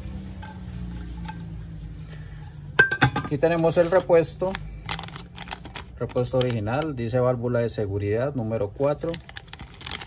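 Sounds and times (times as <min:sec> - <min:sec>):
paper rubbing on metal lid: 0:00.0 - 0:02.8, 0:03.4 - 0:04.6, 0:08.0 - 0:10.0.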